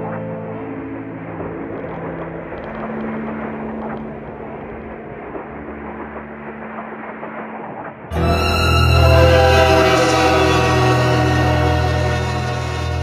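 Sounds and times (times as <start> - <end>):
low hum: 0.0 - 13.0
steady rumbling noise: 0.0 - 13.0.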